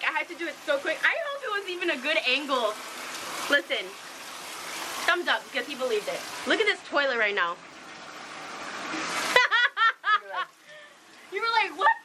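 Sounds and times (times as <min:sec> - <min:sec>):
woman speaking: 0:00.0 - 0:02.8, 0:03.5 - 0:04.0, 0:05.1 - 0:07.6, 0:11.3 - 0:12.0.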